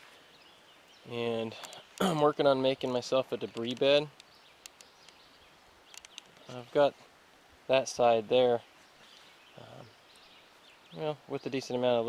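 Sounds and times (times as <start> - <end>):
faint high hiss: 0.0 - 12.0
faint scattered clicks: 1.4 - 2.2, 2.9 - 6.6, 10.1 - 10.4.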